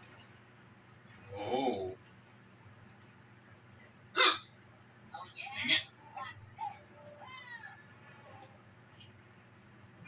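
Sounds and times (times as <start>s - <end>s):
man hiccuping: 4.2s - 4.5s.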